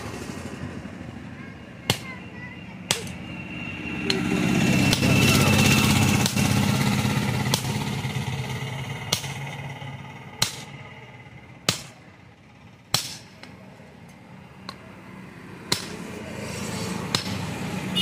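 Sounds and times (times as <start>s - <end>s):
vehicle engine: 0.0s - 18.0s.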